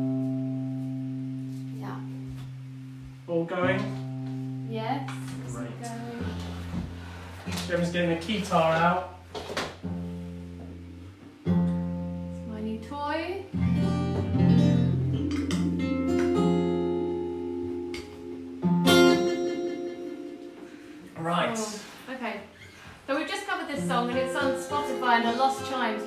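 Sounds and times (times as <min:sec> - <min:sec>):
acoustic guitar chords: 0:00.0 - 0:22.1, 0:23.1 - 0:26.0
synthesizer held notes: 0:10.8 - 0:21.6
person speaking: 0:21.2 - 0:22.2.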